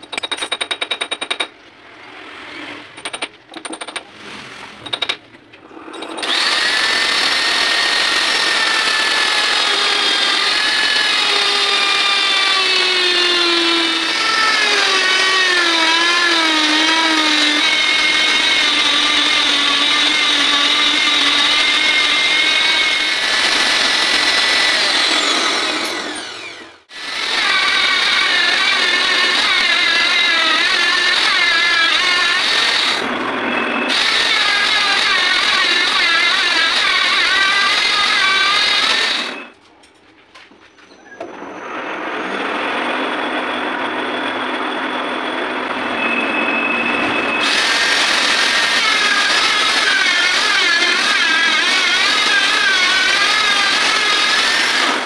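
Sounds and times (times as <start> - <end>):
electric grinder whining: 6.1 - 39.5, 41.6 - 55.0.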